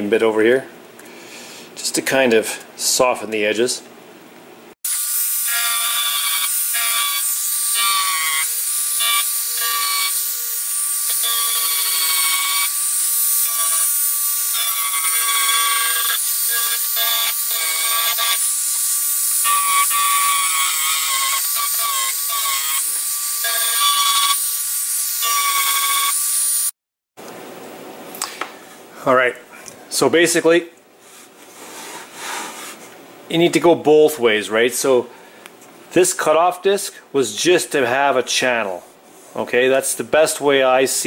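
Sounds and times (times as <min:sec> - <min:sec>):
rotary tool sanding wood: 0:04.9 - 0:26.7.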